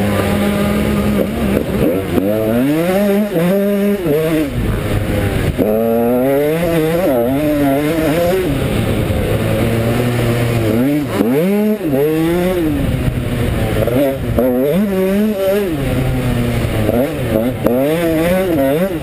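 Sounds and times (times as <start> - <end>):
two-stroke motorcycle engine revving: 0.0 - 19.0.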